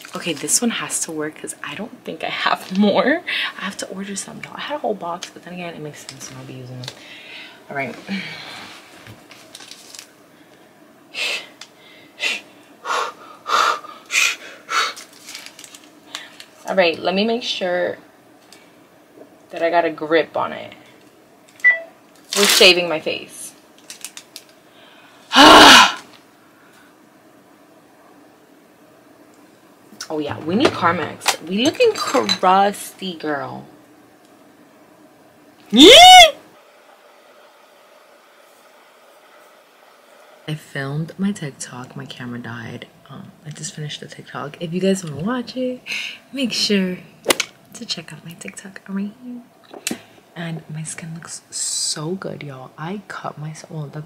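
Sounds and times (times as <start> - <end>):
woman squealing laugh: 35.8 - 36.4.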